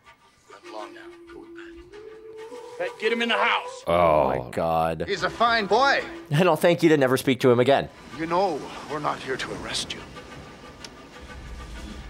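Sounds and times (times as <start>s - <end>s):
steady held soundtrack tone: 0.0s - 12.0s
man shouting: 2.8s - 4.6s.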